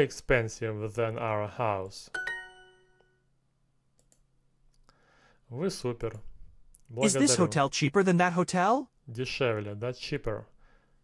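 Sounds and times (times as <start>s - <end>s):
correct-answer chime: 2.2s - 3.2s
computer mouse clicks: 4.0s - 4.9s.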